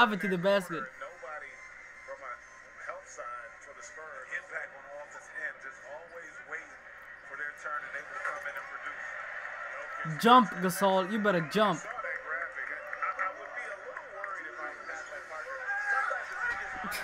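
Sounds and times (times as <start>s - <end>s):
commentator talking: 0.0s - 1.0s, 10.0s - 12.1s
arena crowd noise: 0.0s - 17.0s.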